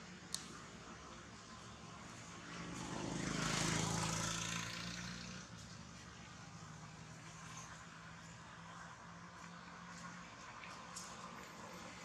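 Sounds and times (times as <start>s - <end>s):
motor passing by: 2.1s - 8.8s.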